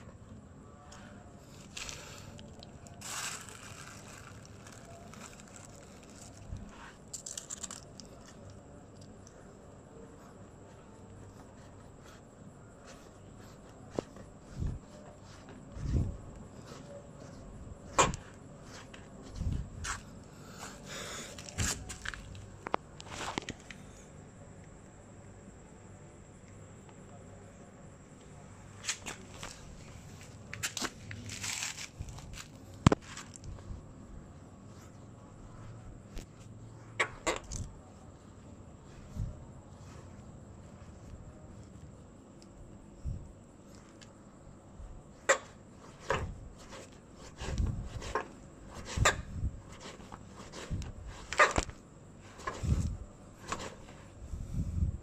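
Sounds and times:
cloth rustling on concrete: 1.4 - 8.6, 28.6 - 36.5.

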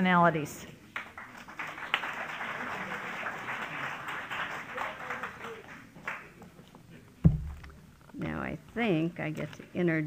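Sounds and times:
heavy thump with deep boom: 7.2 - 7.7.

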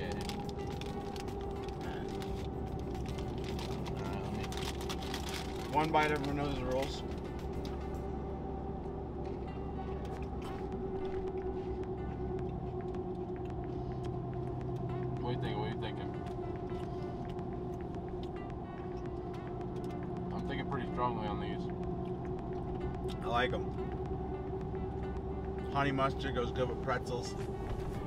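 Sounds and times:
pretzel crunching being chewed: 0.0 - 7.9, 10.0 - 15.2, 16.2 - 20.5
truck driving drone inside cab: 0.0 - 28.0.

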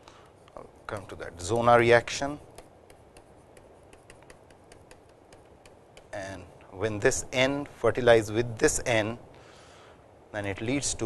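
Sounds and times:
stylus tapping on tablet screen: 0.9 - 6.2.

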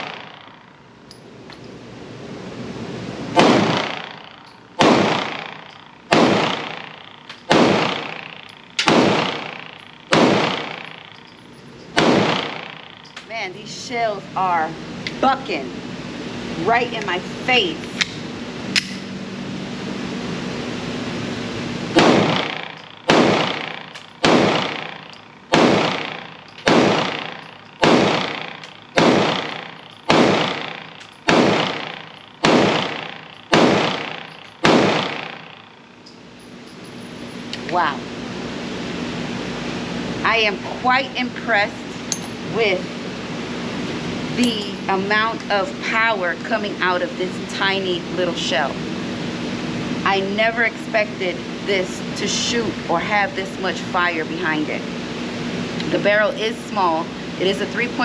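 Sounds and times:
pistol shots echoing indoors: 3.4 - 11.1, 12.0 - 13.0, 22.0 - 35.8.

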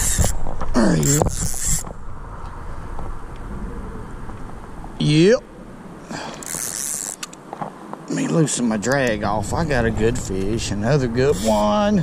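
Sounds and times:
spinning reel winding: 0.0 - 0.3, 1.1 - 1.8, 6.4 - 7.3
person grunting: 0.7 - 1.2.

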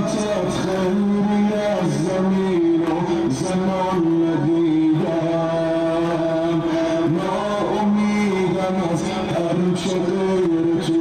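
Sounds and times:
man chanting over loudspeakers: 0.0 - 11.0.

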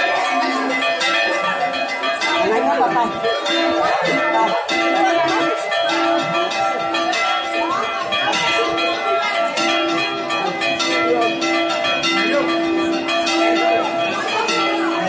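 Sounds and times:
church bells pealing: 0.0 - 15.0.

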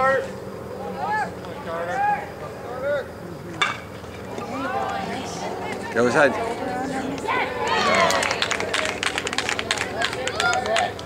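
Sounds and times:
bat hitting baseball: 3.6 - 3.8.

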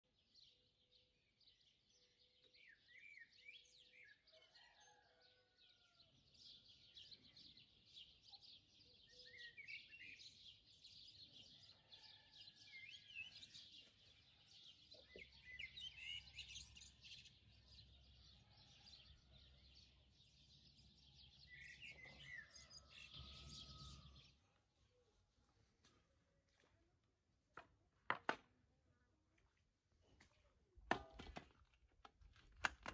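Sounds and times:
small birds chirping: 0.1 - 25.3.

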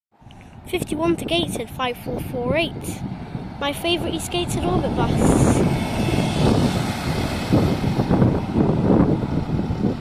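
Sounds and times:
diesel bus engine and tyres rumbling: 0.2 - 10.0
car passing: 2.0 - 10.0.

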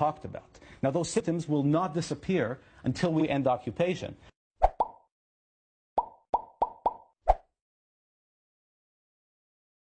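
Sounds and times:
plop sound effects: 6.0 - 7.4.

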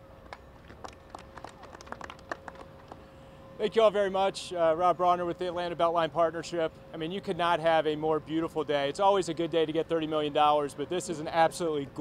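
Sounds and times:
people clapping: 0.2 - 3.1.

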